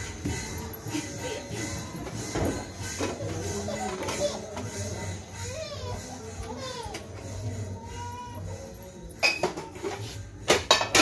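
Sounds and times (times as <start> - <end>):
dishes and utensils clattering: 0.0 - 7.5, 9.0 - 11.0.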